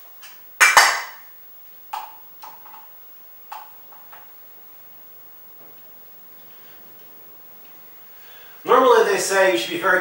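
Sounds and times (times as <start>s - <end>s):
loud sharp clack: 0.6s - 1.3s.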